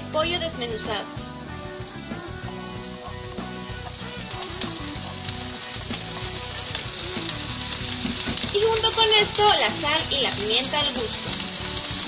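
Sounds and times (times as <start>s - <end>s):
background music: 0.0s - 12.0s
oil sizzling in a frying pan: 0.0s - 12.0s.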